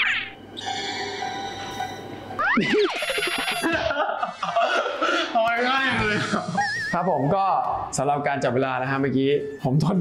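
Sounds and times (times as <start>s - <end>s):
young man laughing: 2.4s - 5.4s, 6.0s - 7.2s.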